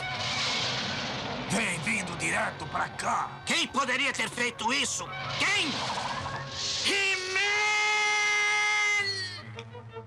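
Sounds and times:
cartoon character screaming: 0:07.0 - 0:09.4.

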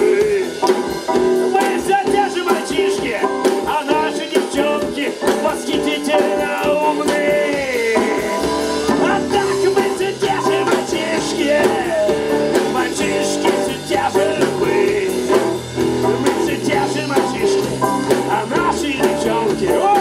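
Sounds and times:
bass line: 0:00.0 - 0:20.0
drum beat: 0:00.0 - 0:20.0
live rock band playing: 0:00.0 - 0:20.0.

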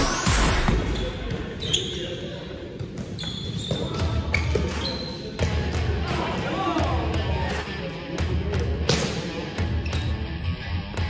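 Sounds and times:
players' voices: 0:00.0 - 0:10.2
sneakers squeaking on floor: 0:00.7 - 0:05.8, 0:09.6 - 0:10.3.

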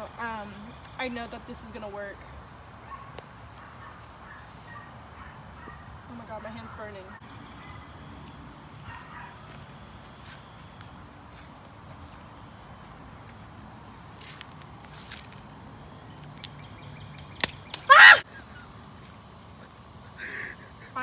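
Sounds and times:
loud cry bending in pitch: 0:17.9 - 0:18.2.

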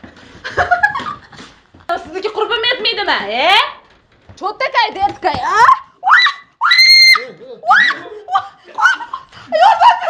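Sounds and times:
laughter: 0:00.4 - 0:01.5, 0:07.2 - 0:10.0
woman screaming: 0:05.6 - 0:08.0
women shrieking: 0:05.6 - 0:09.2.

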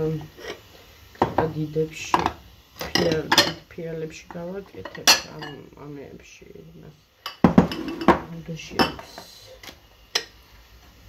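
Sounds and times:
dishes clinking and knocking: 0:02.1 - 0:03.6, 0:07.3 - 0:09.0.

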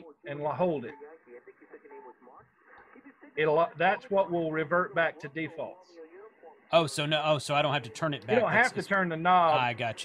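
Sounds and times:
thin radio voice from speaker: 0:08.2 - 0:10.0.

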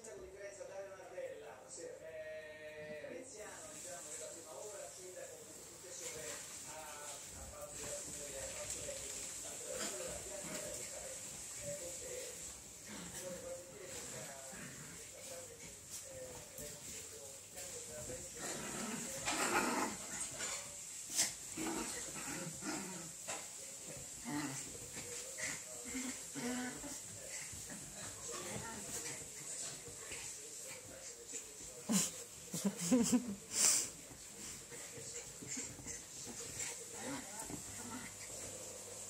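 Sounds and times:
dog and cat play-fighting: 0:03.8 - 0:39.0.

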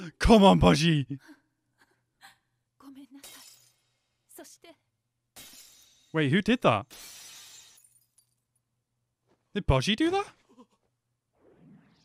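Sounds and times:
glass shattering: 0:03.2 - 0:04.1, 0:05.4 - 0:06.2, 0:06.8 - 0:08.6.

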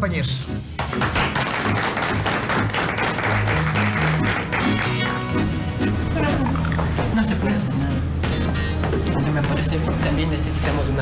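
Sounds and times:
background music: 0:00.0 - 0:11.0
small group applauding: 0:00.8 - 0:05.4.

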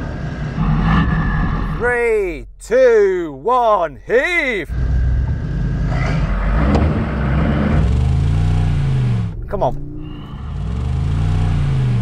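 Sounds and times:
car engine revving under load: 0:04.7 - 0:12.0.

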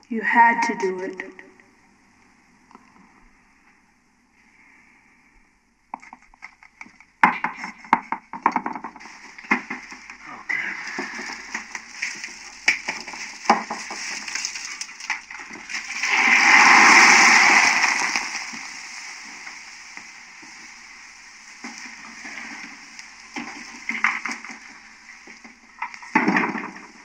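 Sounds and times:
loud hissing rush: 0:15.7 - 0:25.2.

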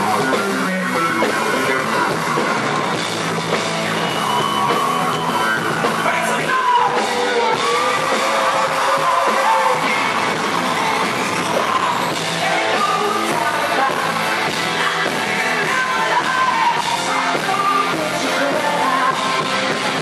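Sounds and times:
man singing lead vocals: 0:00.0 - 0:02.6, 0:06.0 - 0:20.0
rock band playing live: 0:00.0 - 0:20.0.

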